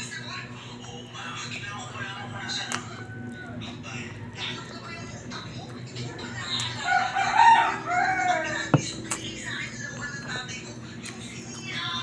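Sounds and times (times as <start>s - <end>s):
rooster crowing: 2.1s - 4.7s, 6.8s - 8.7s.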